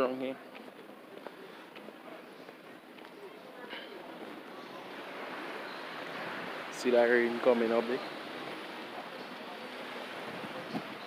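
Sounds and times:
faint distant voices: 0.0 - 11.0
steady outdoor hiss: 0.0 - 11.0.

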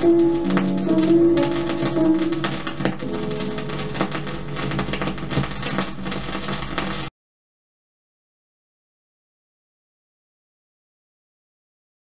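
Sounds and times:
old disc playing music: 0.0 - 7.1
record surface crackle and clicks: 0.0 - 7.1.

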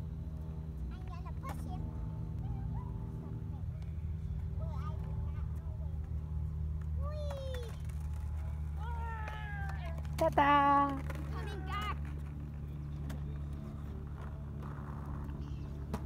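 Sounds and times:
steady hum: 0.0 - 7.1
skateboard wheels rolling on concrete: 4.9 - 16.0.

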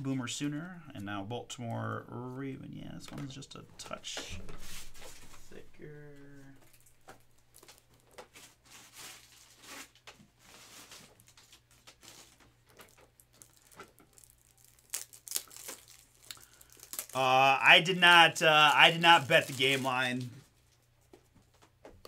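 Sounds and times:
cards and plastic holders rustling: 3.0 - 5.6, 6.6 - 22.0.

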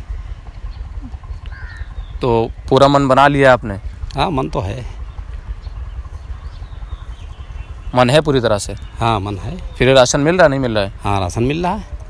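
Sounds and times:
wind rumble on microphone: 0.0 - 9.9
faint bird call: 0.6 - 2.4.

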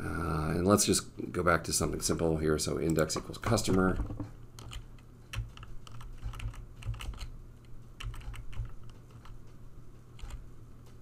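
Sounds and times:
typing on computer keyboard: 3.7 - 7.3, 8.0 - 9.4, 10.2 - 10.4.

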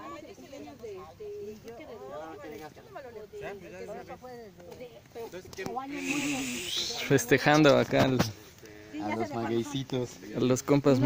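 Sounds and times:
people talking: 5.7 - 8.3
steady hiss: 5.9 - 7.5.

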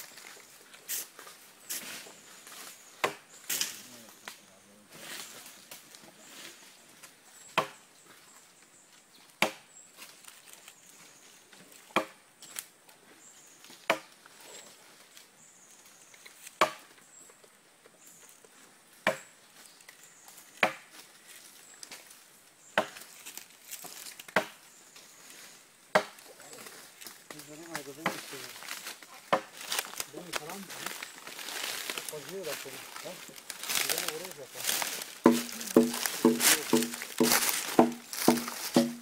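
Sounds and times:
machete chopping into wood: 3.0 - 3.8, 7.6 - 7.8, 9.4 - 9.7, 12.0 - 12.2, 13.9 - 14.1, 16.6 - 16.9, 19.0 - 19.3, 20.6 - 20.9, 22.8 - 23.0, 24.3 - 24.6, 25.9 - 26.2, 35.2 - 39.0.

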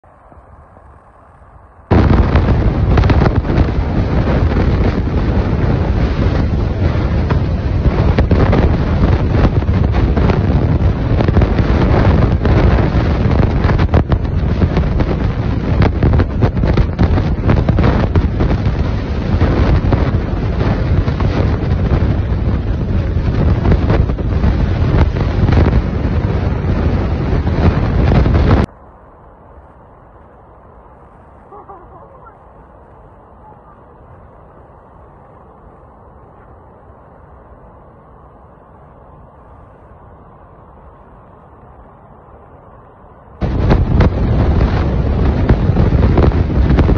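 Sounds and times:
water roaring down spillway: 0.1 - 46.9.

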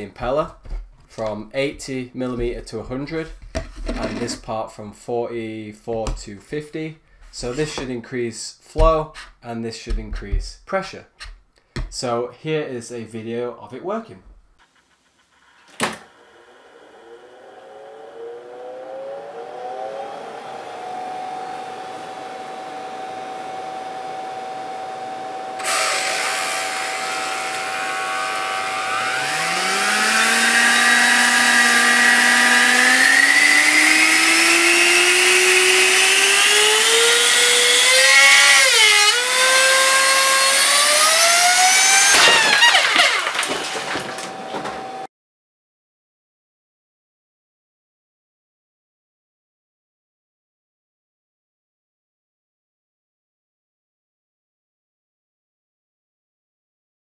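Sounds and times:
electric motor whine and air rush: 16.1 - 43.4
plastic parts cracking and clattering: 42.0 - 44.8.

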